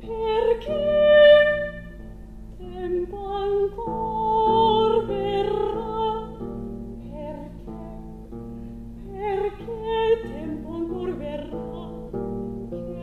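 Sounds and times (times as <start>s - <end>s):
soprano singing with vibrato: 0.0s - 8.2s, 9.0s - 12.2s.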